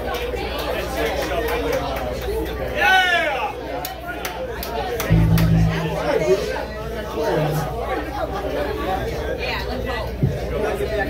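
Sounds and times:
crowd chatter: 0:05.0 - 0:11.0
low held amplified notes: 0:05.1 - 0:06.7.

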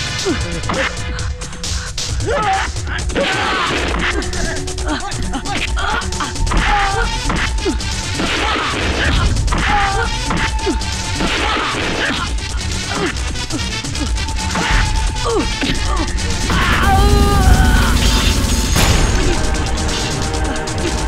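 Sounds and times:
action music: 0:00.0 - 0:21.0.

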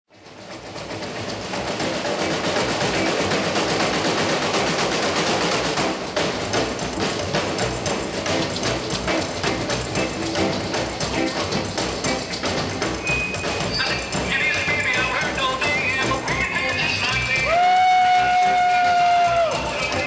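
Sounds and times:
fast clicking beat: 0:00.1 - 0:20.0
live band playing: 0:00.2 - 0:20.0.

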